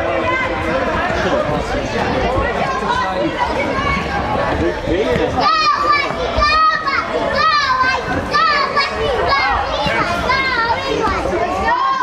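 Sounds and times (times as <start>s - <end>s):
children shouting and calling out: 2.3s - 4.6s, 5.3s - 12.0s.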